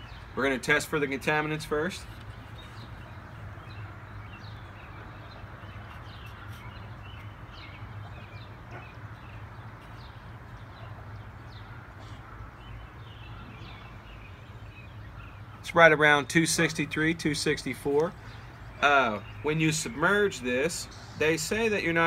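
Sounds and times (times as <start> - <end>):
small birds chirping: 0.0 - 22.0.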